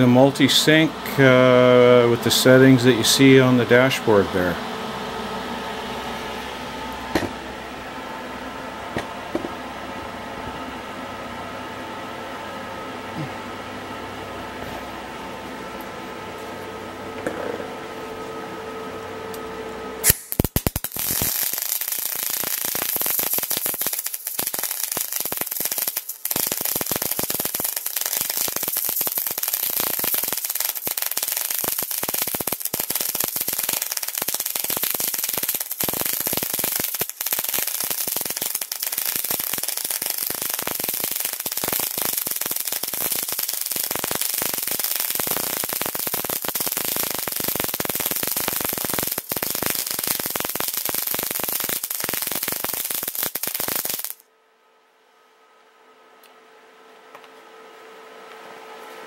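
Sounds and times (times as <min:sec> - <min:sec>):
welding arc crackling: 0:20.0 - 0:54.2.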